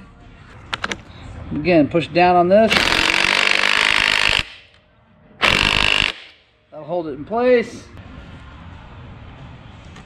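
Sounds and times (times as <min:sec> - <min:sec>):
impact wrench hammering: 0:02.7 - 0:04.7, 0:05.4 - 0:06.4.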